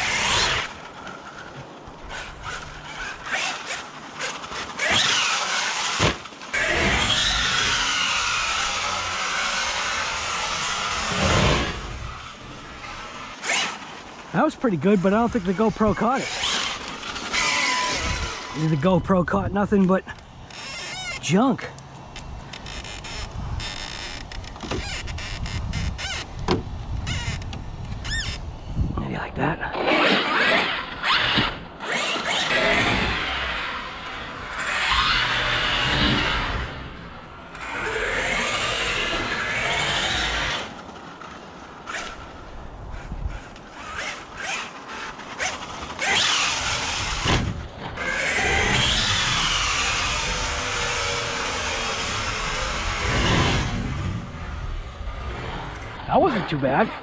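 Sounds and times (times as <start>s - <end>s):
tyres scrabbling over dirt: 0.0s - 28.4s
electric motor whining: 0.0s - 29.0s, 29.7s - 56.9s.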